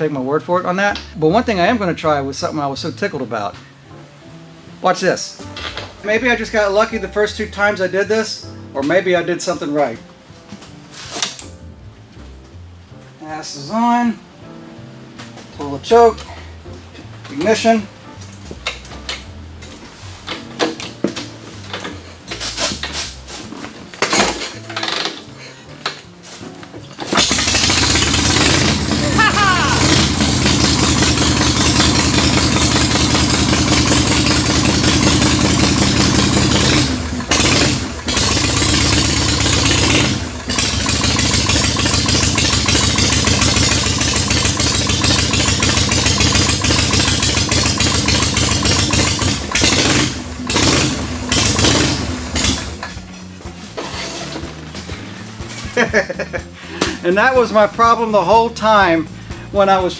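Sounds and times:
motorcycle kickstarted: 27.0s - 53.1s
motorcycle engine running: 27.0s - 57.0s.

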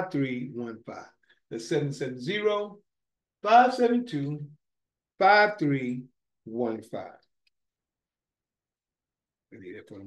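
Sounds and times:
man speaking: 0.0s - 2.8s, 3.4s - 4.6s, 5.2s - 7.3s.

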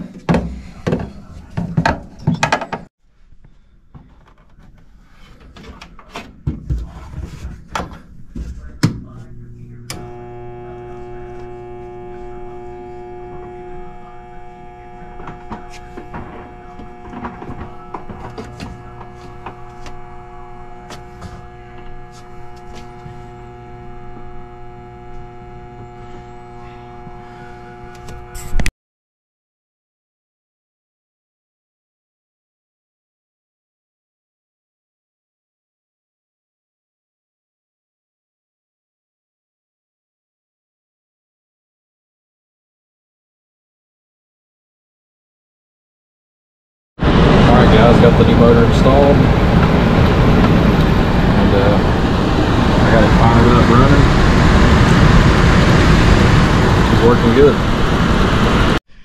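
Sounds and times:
electric motor hum: 9.0s - 28.7s, 47.0s - 58.8s.

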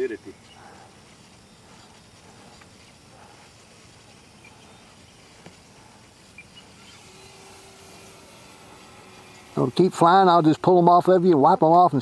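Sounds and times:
faint steady tone: 0.0s - 12.0s
model plane motor and propeller hum: 0.0s - 12.0s.

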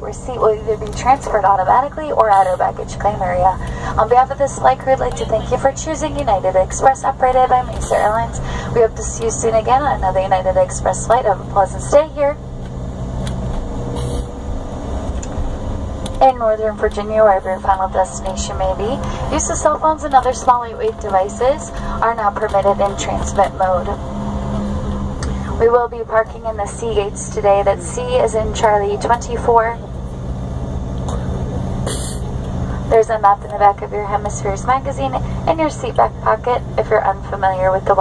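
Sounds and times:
faint steady whine: 0.0s - 38.0s
jet engines idling rumble: 0.0s - 38.0s
brief hiss: 14.0s - 14.3s
short sharp hiss: 14.0s - 14.3s, 31.8s - 32.3s.

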